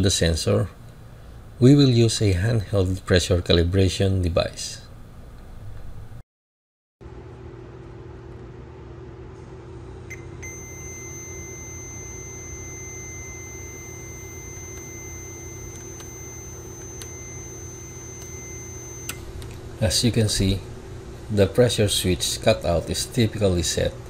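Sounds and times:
steady low hum: 0.0 - 6.2, 7.0 - 24.0
multimeter high beep: 10.1 - 20.4.

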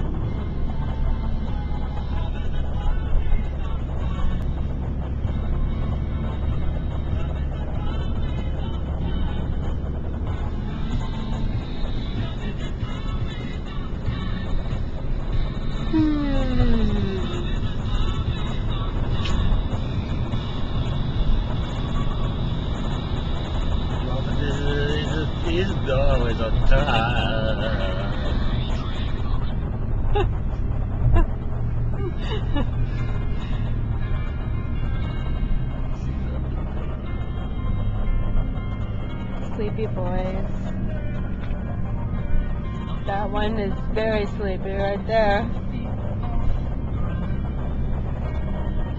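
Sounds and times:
car cabin road noise: 0.0 - 48.9.

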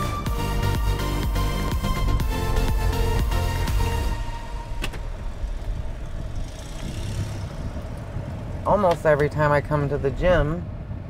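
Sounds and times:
low vehicle rumble: 0.0 - 11.0.

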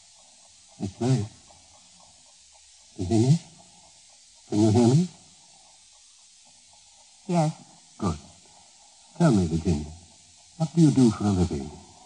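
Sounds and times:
old radio recording hiss: 0.0 - 12.0
person speaking: 0.8 - 1.4, 3.0 - 3.5, 4.5 - 5.2, 7.3 - 8.4, 9.1 - 11.9.

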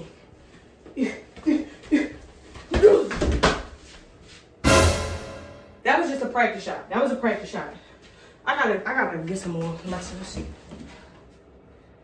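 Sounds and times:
musical sound effect: 4.6 - 5.8.

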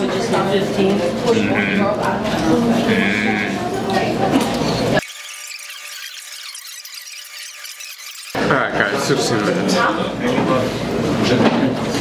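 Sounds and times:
sped-up high-pitched jumble: 5.0 - 8.4.

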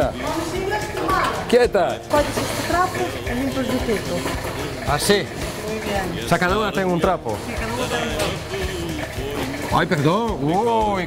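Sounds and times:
man and woman murmuring: 0.0 - 10.9.

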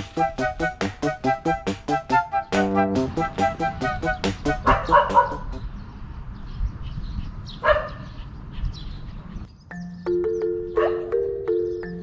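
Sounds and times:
light background music: 0.0 - 5.6, 9.7 - 12.0
small dog barking: 4.6 - 5.5, 7.6 - 8.1, 10.8 - 11.1.

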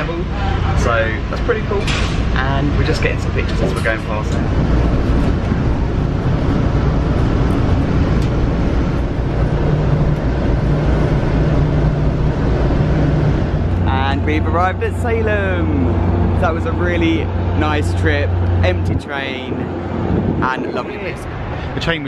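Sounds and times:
low hum: 0.0 - 21.9
train rumble from inside coach: 0.0 - 22.0.

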